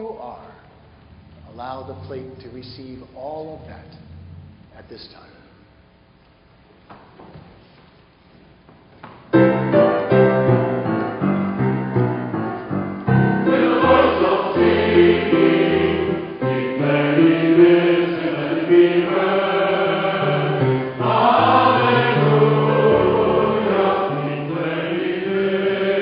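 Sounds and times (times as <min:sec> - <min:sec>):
piano accompaniment: 0:09.3 - 0:26.0
choir singing: 0:13.1 - 0:26.0.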